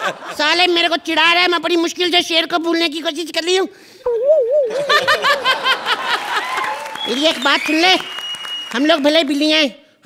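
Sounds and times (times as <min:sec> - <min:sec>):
woman laughing loudly: 0:04.7 - 0:06.6.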